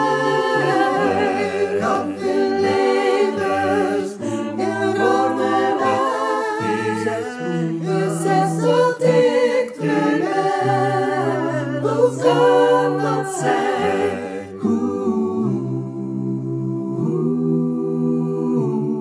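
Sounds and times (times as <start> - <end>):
a cappella choir singing: 0.0 - 19.0.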